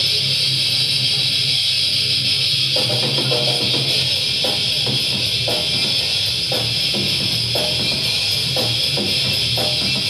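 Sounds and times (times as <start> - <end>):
distorted electric guitar riffing: 2.7 - 10.0.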